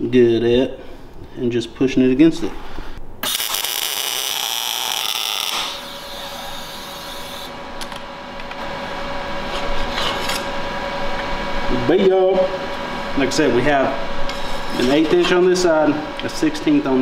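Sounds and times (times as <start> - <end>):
welder hiss: 3.2 - 7.5
welding arc crackle: 3.2 - 7.5.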